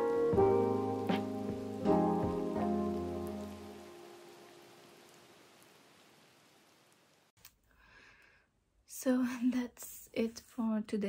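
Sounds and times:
soft piano music: 0.0s - 4.9s
rain-like hiss: 0.0s - 7.4s.

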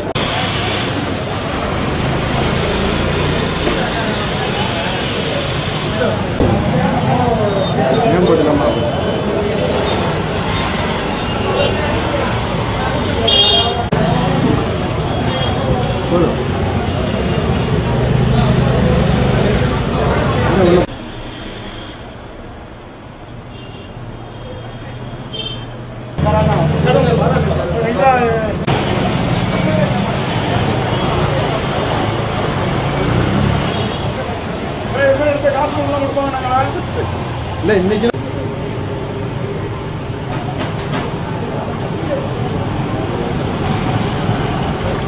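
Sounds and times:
people talking: 0.0s - 20.9s, 26.2s - 45.0s
people's voices: 0.0s - 20.9s, 26.2s - 45.0s
street traffic noise: 0.0s - 45.0s
high-pitched vehicle horn toot: 13.3s - 13.9s, 21.2s - 22.2s.

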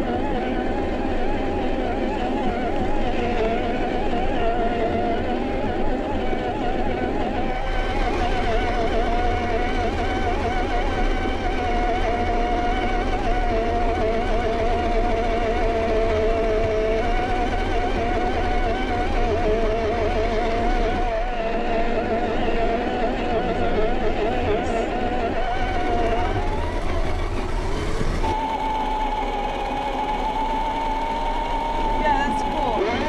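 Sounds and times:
electric motor and gearbox whining: 0.0s - 33.0s.

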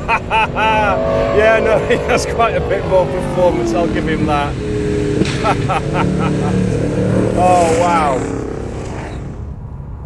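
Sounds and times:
car engines running hard: 0.0s - 10.0s.

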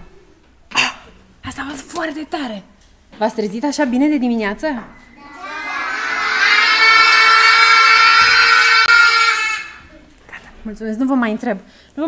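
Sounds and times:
children yelling together: 5.2s - 9.9s.

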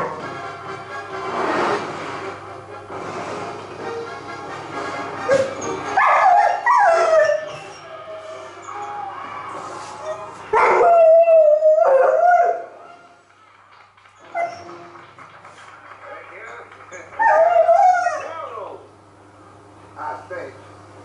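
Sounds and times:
dog whining: 5.2s - 9.4s, 10.0s - 13.1s, 14.2s - 14.8s, 17.2s - 18.4s
dog howling: 5.3s - 13.0s, 17.2s - 18.4s.

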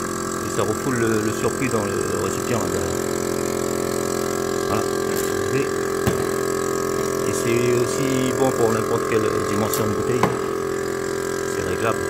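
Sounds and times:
electric vacuum pump running: 0.0s - 12.0s.

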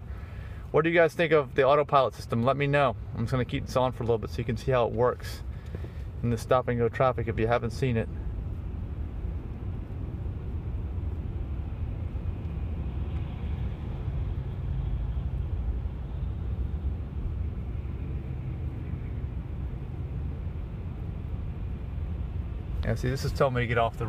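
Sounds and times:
road and tyre rumble: 0.0s - 24.0s
surrounding traffic: 0.0s - 24.0s.

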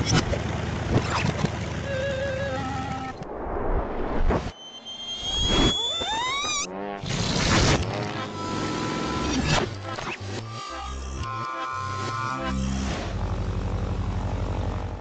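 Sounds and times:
whistling tone rising and falling: 1.9s - 6.7s
whoosh: 3.1s - 7.6s.

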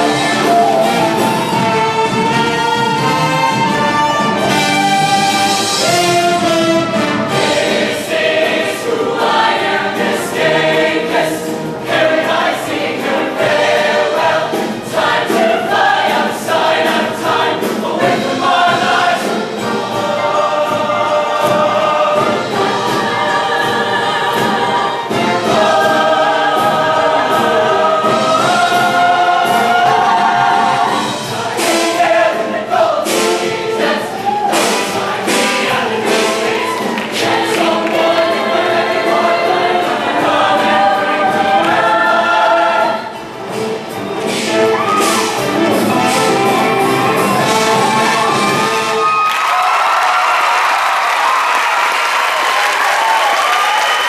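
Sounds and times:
choir singing in parts: 0.0s - 54.0s
band with driving beat: 43.4s - 49.3s.

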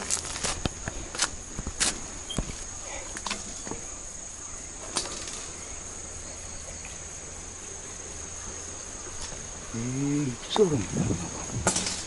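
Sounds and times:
insects trilling: 0.0s - 12.0s.

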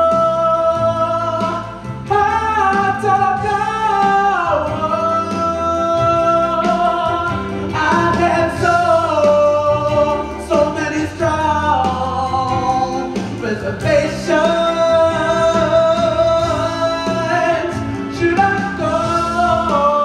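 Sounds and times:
band accompaniment: 0.0s - 20.0s.

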